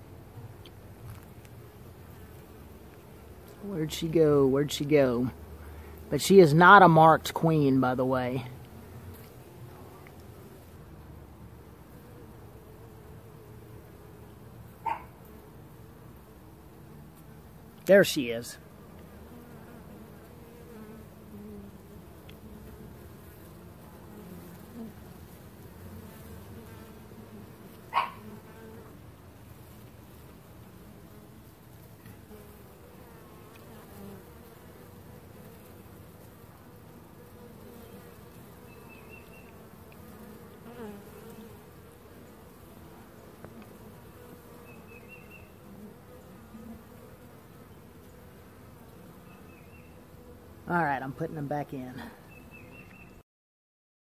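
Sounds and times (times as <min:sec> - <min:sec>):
bees buzzing: 0:00.0 - 0:53.2.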